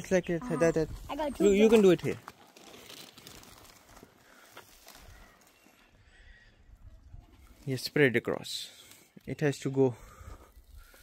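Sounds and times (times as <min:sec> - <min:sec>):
faint high-pitched tones: 0:00.4 - 0:00.9.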